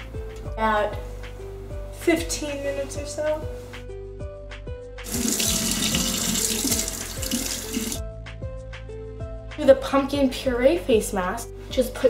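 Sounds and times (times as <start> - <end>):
background music plucked notes: 0.0 - 12.0
faucet running into metal sink: 5.0 - 8.0.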